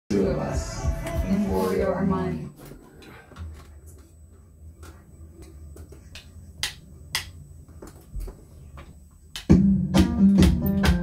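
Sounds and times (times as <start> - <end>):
drumsticks tapping electronic drum pads: 5.7 - 11.0.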